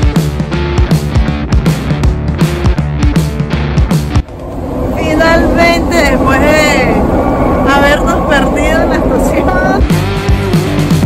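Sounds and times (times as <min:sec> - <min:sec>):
rock music with guitar: 0:00.0 - 0:04.3
metro train rumbling: 0:04.1 - 0:10.9
woman speaking: 0:04.9 - 0:09.9.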